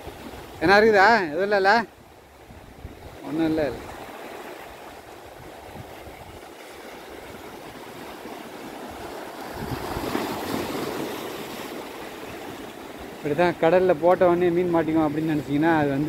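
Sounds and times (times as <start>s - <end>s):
sea surf washing on beach: 0.0s - 16.0s.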